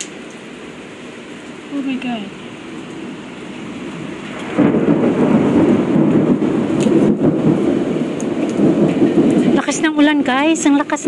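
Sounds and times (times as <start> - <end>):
heavy rain: 0.0 - 11.0
strong wind: 0.0 - 11.0
thunder rumbling: 0.5 - 11.0.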